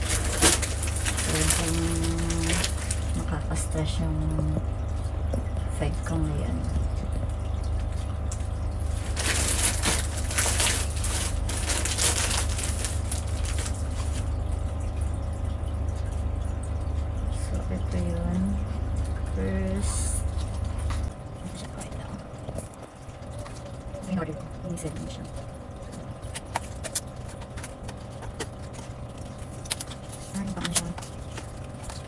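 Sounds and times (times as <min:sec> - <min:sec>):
plastic packaging crinkling: 0:00.0 - 0:03.3, 0:08.8 - 0:14.5, 0:25.8 - 0:32.0
steady low hum: 0:00.0 - 0:32.0.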